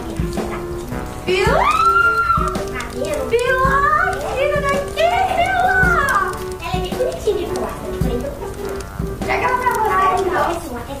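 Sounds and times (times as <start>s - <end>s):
background music with held note: 0.0s - 10.6s.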